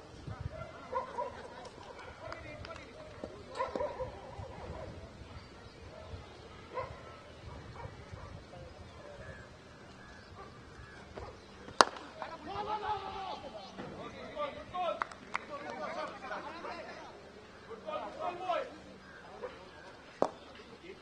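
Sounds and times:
distant voices: 0.0 - 21.0.

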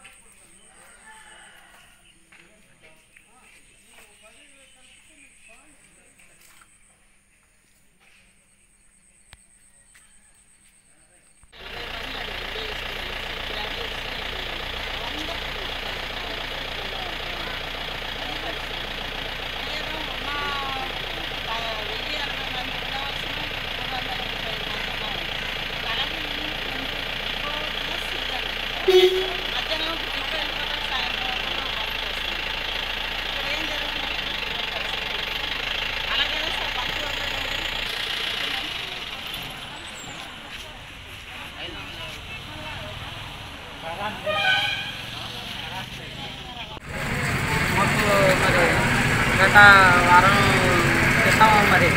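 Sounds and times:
people talking: 0.0 - 7.0, 10.9 - 51.9
diesel generator droning: 11.6 - 51.9.

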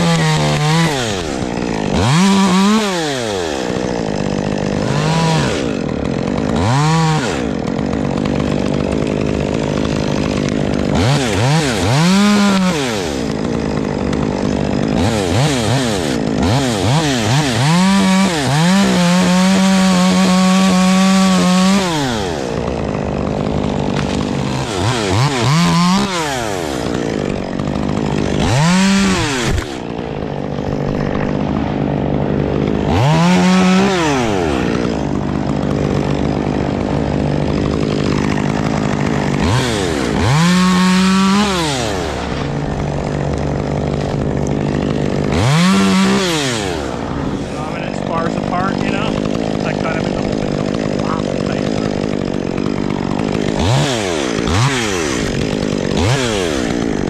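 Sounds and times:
chainsaw cutting wood: 0.0 - 57.0.

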